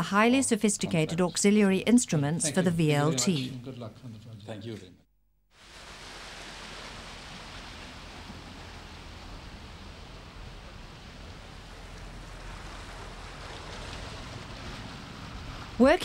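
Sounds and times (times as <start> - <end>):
boat engine rumble: 5.5 - 16.0
churning water from wake: 5.6 - 16.0.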